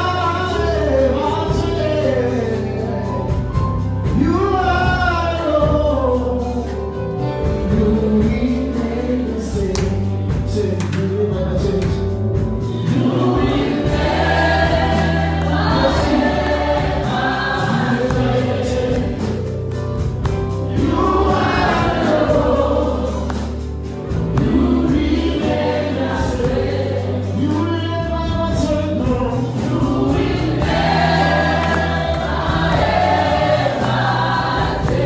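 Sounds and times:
live band with bass: 0.0 - 35.0
group singing worship song: 4.0 - 10.6, 11.8 - 35.0.

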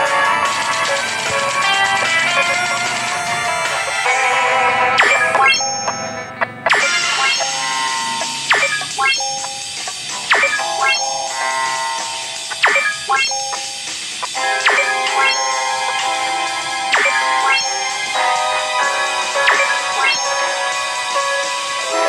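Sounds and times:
light bell-like background music: 0.0 - 22.0.

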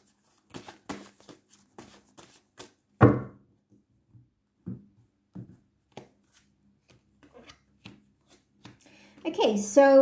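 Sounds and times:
cards tapping and flicking: 5.9 - 9.2.

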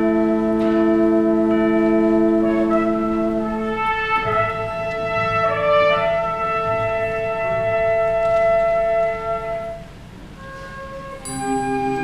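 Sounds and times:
wind ensemble holding a chord: 0.0 - 12.0.

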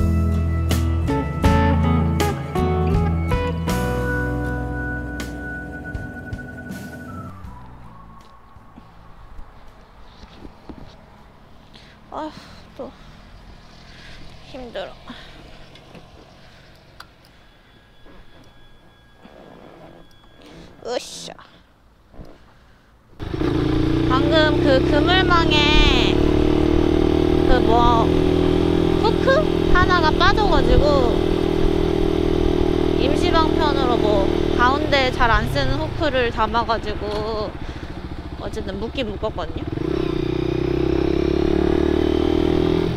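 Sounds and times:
road and wind noise: 0.0 - 42.9
motorcycle engine idling: 11.9 - 19.0, 23.2 - 41.5.

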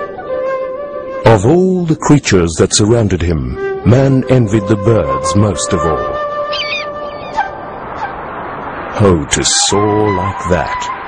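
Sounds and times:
bird cries: 6.4 - 8.3.

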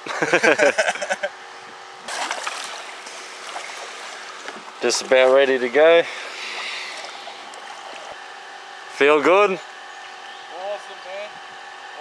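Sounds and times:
river water hissing around kayak: 2.1 - 9.5.

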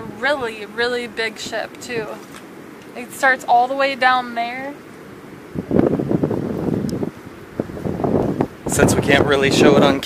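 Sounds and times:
wind buffeting microphone: 5.2 - 10.0.

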